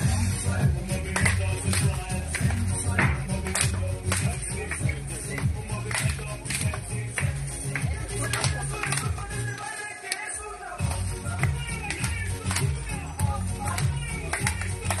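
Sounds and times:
dance music with strong bass: 0.0 - 15.0.

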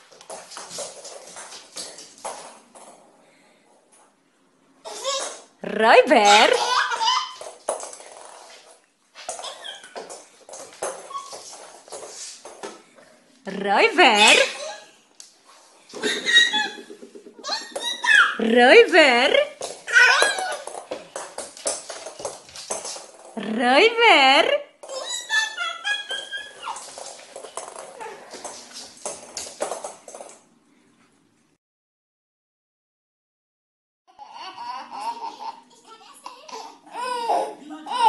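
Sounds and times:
taps and shuffling on wooden floor: 7.4 - 13.1, 19.6 - 23.4, 26.1 - 30.4
toddler squealing: 9.4 - 10.0, 24.9 - 26.8
baby squeaking: 9.4 - 10.1, 11.0 - 11.4, 16.0 - 18.4, 24.9 - 26.9.

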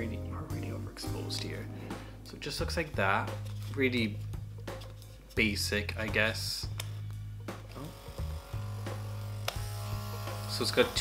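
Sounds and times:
small electric motor humming: 7.8 - 11.0.

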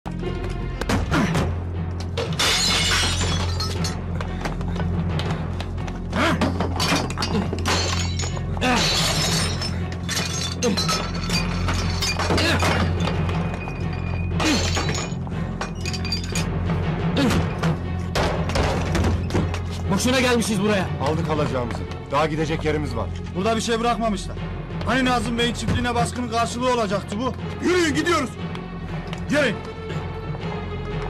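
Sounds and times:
glass shattering: 2.2 - 4.0, 6.7 - 16.5.

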